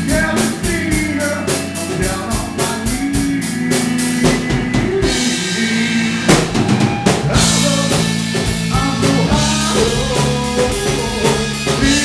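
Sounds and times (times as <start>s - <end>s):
drum kit with cymbal wash: 0.0s - 12.0s
sustained electric guitar chords: 0.0s - 12.0s.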